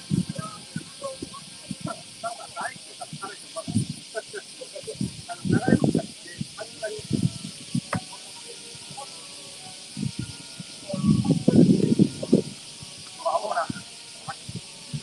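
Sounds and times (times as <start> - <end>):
murmur of voices: 0.0 - 15.0
steady high hiss: 0.0 - 15.0.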